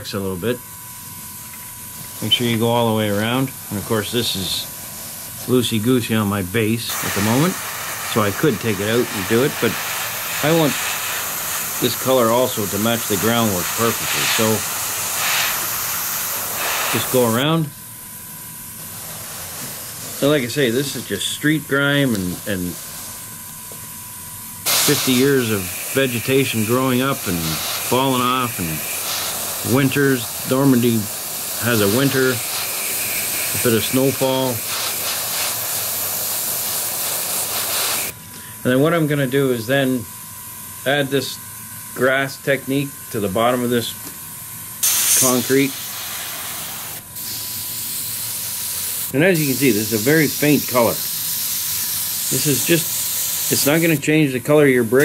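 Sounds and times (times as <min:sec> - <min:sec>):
airbrush spraying air hiss: 0:02.0 - 0:05.8, 0:06.9 - 0:17.6, 0:18.8 - 0:23.8, 0:24.6 - 0:38.2, 0:44.8 - 0:54.1.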